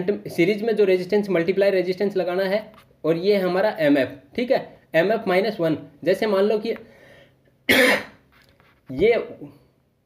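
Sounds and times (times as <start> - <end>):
man coughing: 7.7 - 8.2.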